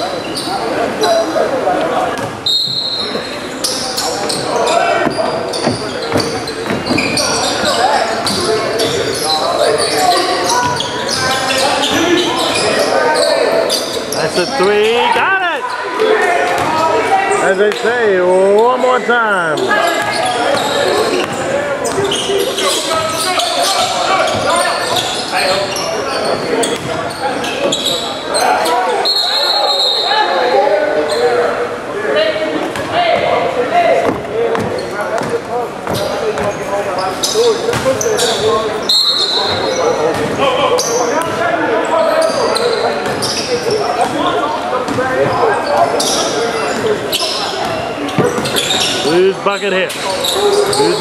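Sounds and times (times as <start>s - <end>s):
echoing voices: 0.0s - 51.0s
high-pitched shoe squeaks: 2.4s - 14.7s, 19.6s - 30.2s, 45.6s - 51.0s.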